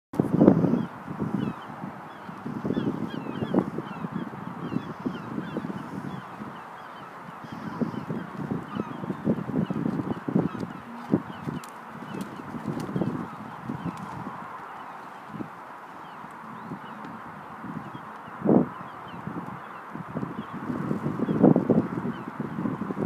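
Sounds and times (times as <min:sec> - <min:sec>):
outdoor background noise: 0:00.2 - 0:23.0
birds calling: 0:00.4 - 0:23.0.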